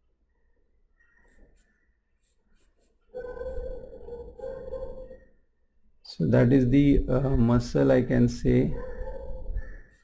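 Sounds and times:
pencil strokes on paper: 1.0 - 4.8, 9.7 - 10.0.

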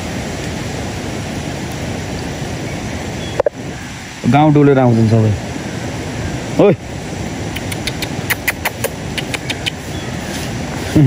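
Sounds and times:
steady rushing hiss: 0.0 - 11.0
microphone handling clicks and taps: 3.4 - 3.6.

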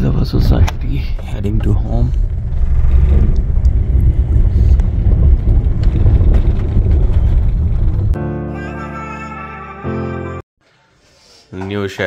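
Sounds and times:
car engine and road noise: 0.0 - 8.2.

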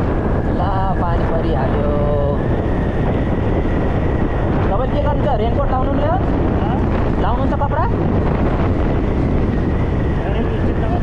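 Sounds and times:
wind rushing over microphone: 0.0 - 11.0.

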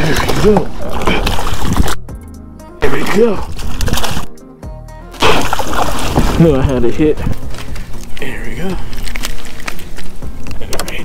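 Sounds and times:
knocks and rattles on kayak: 5.4 - 8.0.

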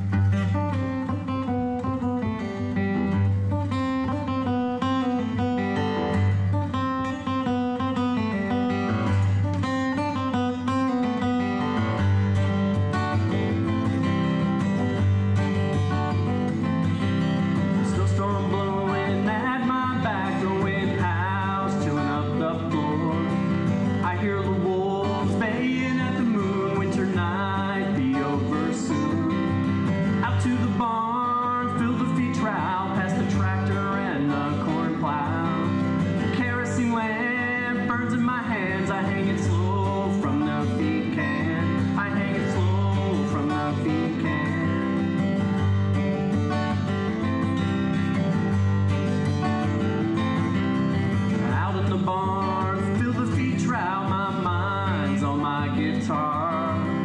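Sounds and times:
acoustic guitar repeated notes: 0.0 - 57.0
man singing: 16.2 - 45.5, 51.2 - 57.0.

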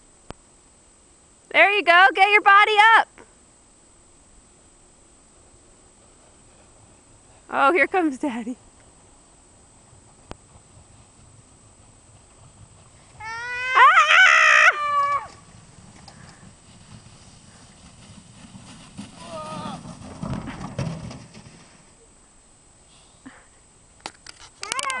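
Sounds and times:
high-pitched whooping shriek: 13.2 - 15.4.

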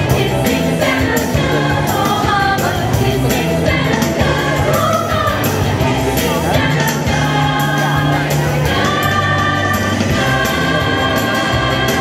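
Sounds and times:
choir singing in unison: 0.0 - 12.0
instrumental accompaniment: 0.0 - 12.0.

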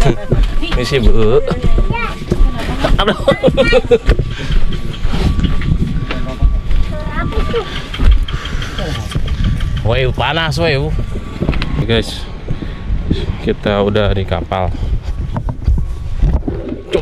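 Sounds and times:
passengers talking: 0.0 - 12.5
continuous low rumble: 0.0 - 17.0.

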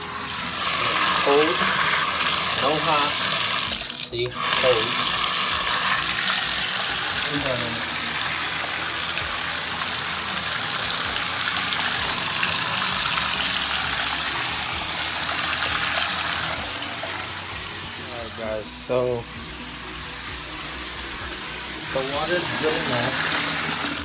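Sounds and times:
water gushing into a bathtub: 0.0 - 24.0.

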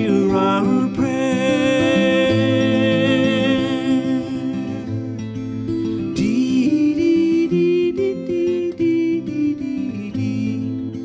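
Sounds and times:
fingerpicked acoustic guitar: 0.0 - 11.0.

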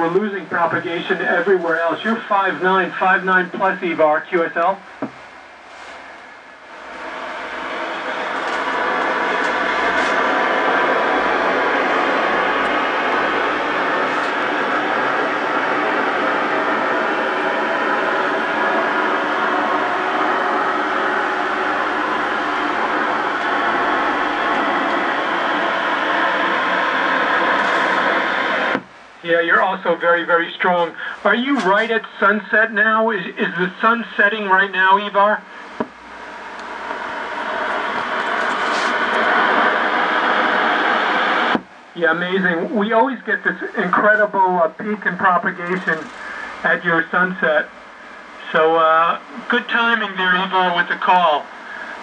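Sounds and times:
shortwave receiver hiss: 0.0 - 52.0.

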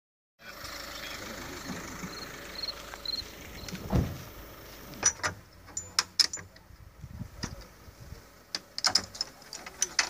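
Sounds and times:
vehicle engine idling: 0.4 - 10.0.

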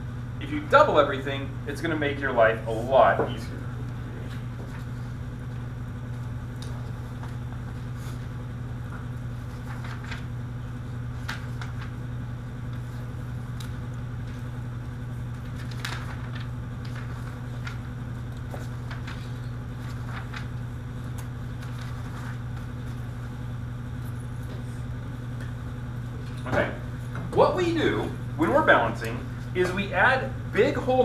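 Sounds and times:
low room hum: 0.0 - 31.0
paper sheets rustling: 6.1 - 23.4.

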